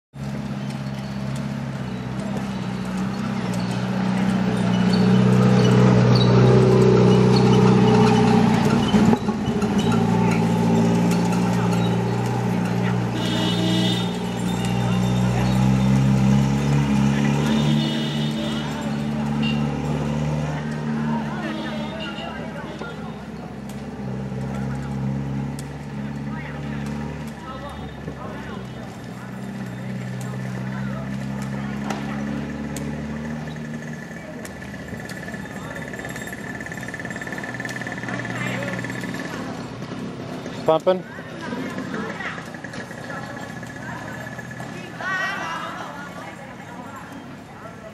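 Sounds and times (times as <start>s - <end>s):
people's voices: 0.5s - 47.9s.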